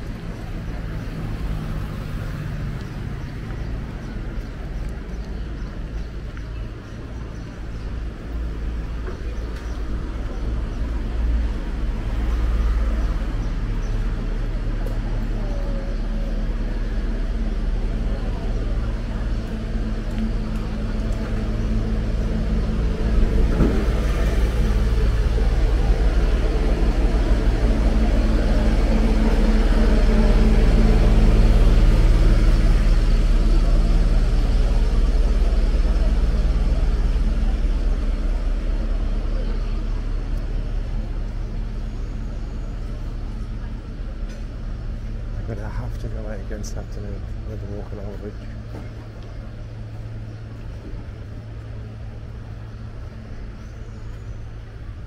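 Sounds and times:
street traffic: 0.0s - 55.0s
truck motor humming: 0.0s - 55.0s.

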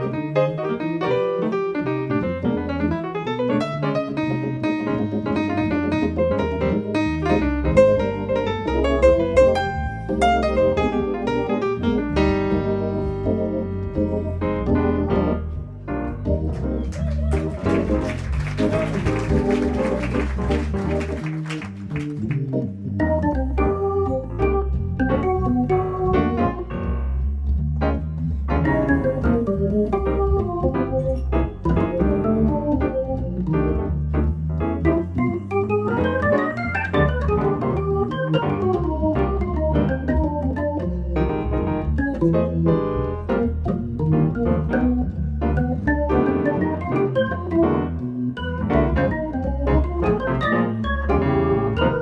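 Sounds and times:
low bass line: 0.0s - 52.0s
organ playing jazz ballad: 0.0s - 52.0s
piano: 0.0s - 52.0s.

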